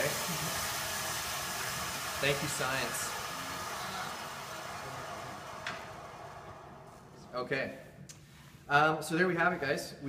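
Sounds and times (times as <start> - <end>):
woodshop machinery winding down: 0.0 - 7.5.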